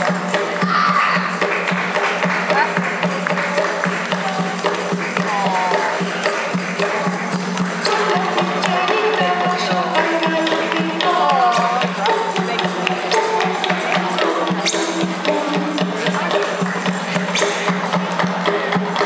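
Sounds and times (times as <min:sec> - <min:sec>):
maracas and tambourine rattling: 0:00.0 - 0:19.0
music: 0:00.0 - 0:19.0.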